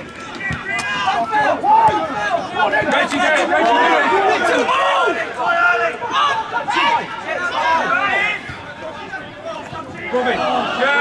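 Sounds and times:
crowd chatter: 0:00.0 - 0:11.0
voices shouting and calling: 0:00.0 - 0:11.0.

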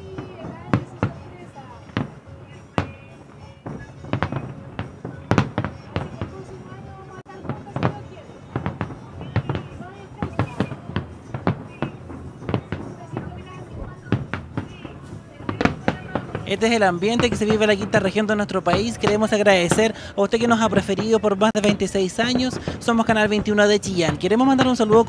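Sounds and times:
fireworks bursting with bangs: 0:00.0 - 0:25.0
people's voices: 0:00.0 - 0:25.0.

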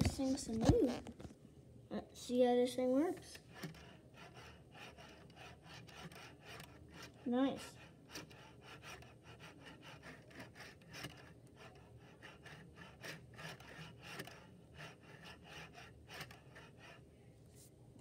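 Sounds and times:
model train wheels clicking on track: 0:03.2 - 0:17.0.

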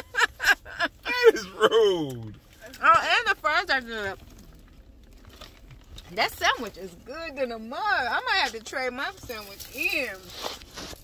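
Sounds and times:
car cabin rumble: 0:00.0 - 0:10.3.

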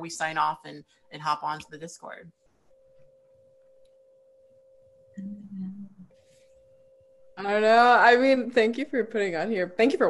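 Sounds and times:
faint steady electronic tone: 0:00.0 - 0:10.0.

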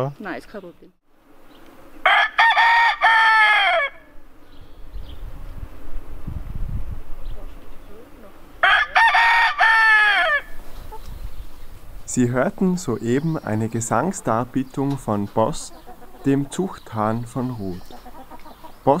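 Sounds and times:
rooster crowing: 0:02.0 - 0:04.2, 0:08.6 - 0:10.6.

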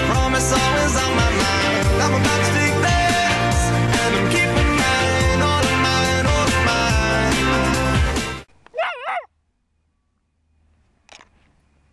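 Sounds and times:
puppy whining: 0:08.8 - 0:09.3.

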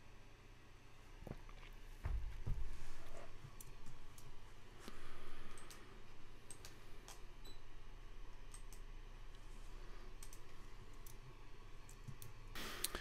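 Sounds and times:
low steady hum: 0:00.0 - 0:13.0
computer keyboard and mouse clicks: 0:05.5 - 0:07.3, 0:08.4 - 0:08.9, 0:10.2 - 0:11.2.

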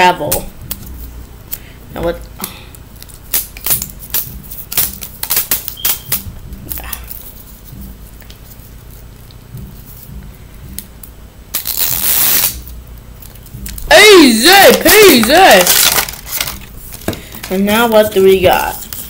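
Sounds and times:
plastic wrapping crackling: 0:14.5 - 0:19.0
plastic rustling burst: 0:14.6 - 0:17.6.

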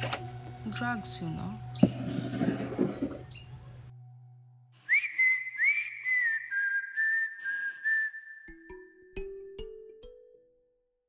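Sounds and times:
whistled tune: 0:04.8 - 0:09.4.

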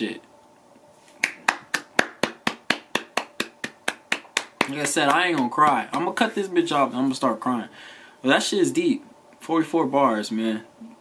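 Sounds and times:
person clapping hands: 0:01.2 - 0:06.2.

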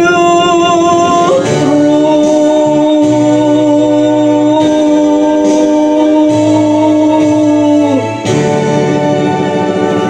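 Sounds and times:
man singing a long note: 0:00.0 - 0:08.3
slow ballad backing track: 0:00.0 - 0:10.0.

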